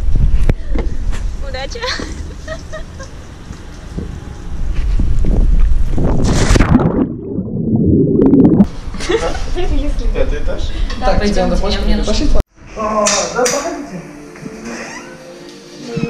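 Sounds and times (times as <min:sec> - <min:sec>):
muffled underwater gurgling: 0:06.3 - 0:08.7.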